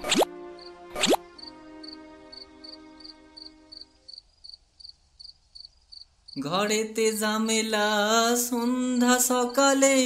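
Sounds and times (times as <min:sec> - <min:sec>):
falling-pitch cartoon sound effect: 0:01.0 - 0:01.2
faint cricket chirps: 0:01.4 - 0:10.0.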